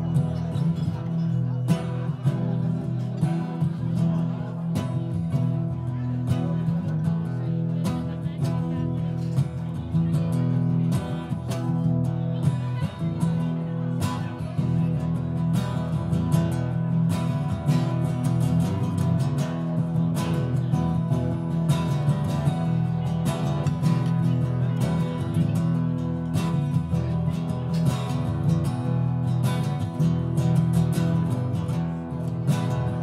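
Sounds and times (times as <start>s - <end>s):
acoustic guitars strumming: 0.0s - 33.0s.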